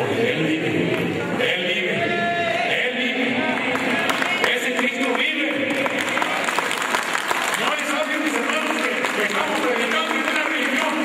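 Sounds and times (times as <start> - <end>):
crowd applauding: 3.5 - 11.0.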